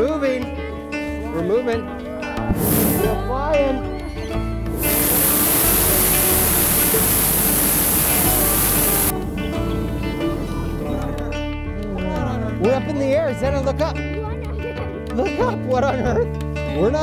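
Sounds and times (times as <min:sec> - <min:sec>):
background music: 0:00.0 - 0:17.0
propane burner hissing blast: 0:02.5 - 0:03.2, 0:04.8 - 0:09.1.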